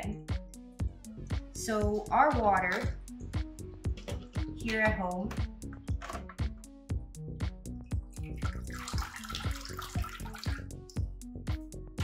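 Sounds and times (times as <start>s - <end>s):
background music with beat: 0.0s - 12.0s
water splashing and dripping: 7.8s - 12.0s.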